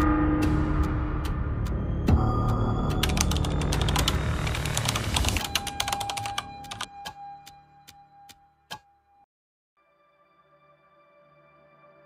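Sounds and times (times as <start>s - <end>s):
rapid clicks: 2.9s - 6.9s.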